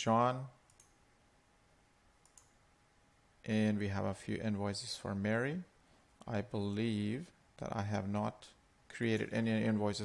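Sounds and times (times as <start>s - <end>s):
faint mouse clicks: 0.7s - 1.0s, 2.2s - 2.6s.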